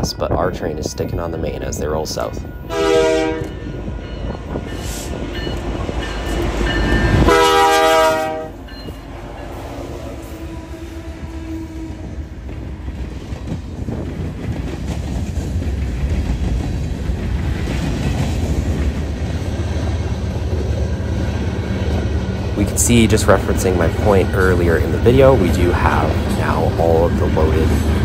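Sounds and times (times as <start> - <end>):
train wheels rumbling on rails: 0.0 - 28.0
train horn: 2.7 - 3.6, 7.1 - 8.6, 9.4 - 12.3.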